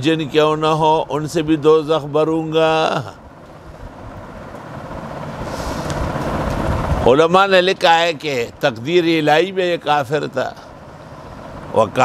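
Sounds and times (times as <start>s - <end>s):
road vehicle passing: 0.0s - 12.0s.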